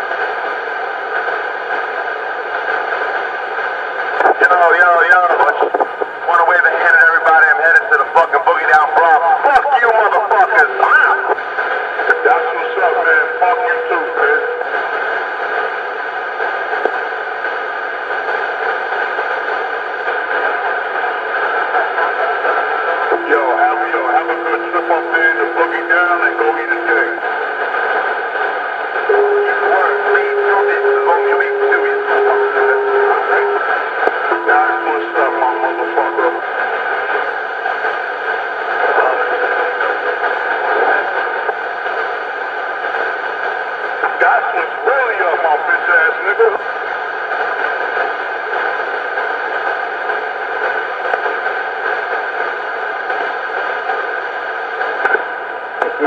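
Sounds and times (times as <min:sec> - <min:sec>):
constant hum: 0:00.0 - 0:56.0
voices through tinny speaker: 0:04.0 - 0:49.8
long held notes: 0:23.1 - 0:27.2, 0:29.1 - 0:36.4.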